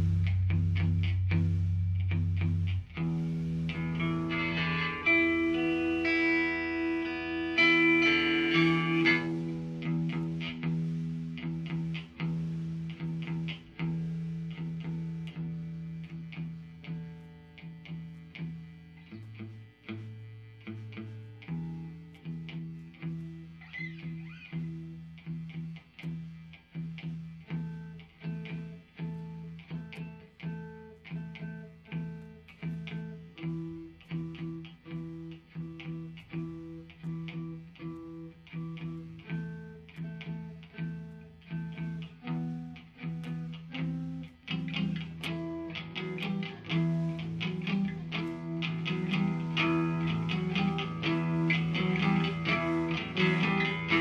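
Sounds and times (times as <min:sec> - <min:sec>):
electric guitar picking notes: 0:00.0 - 0:54.0.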